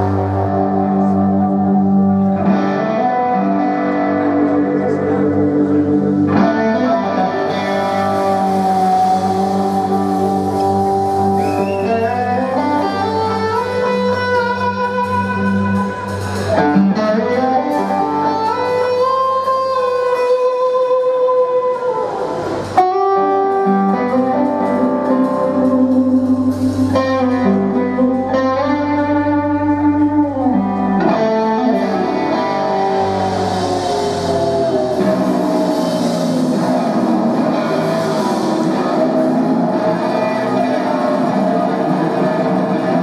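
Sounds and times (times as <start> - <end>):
electric guitar solo: 0.0 - 43.0
steady bass notes: 0.0 - 43.0.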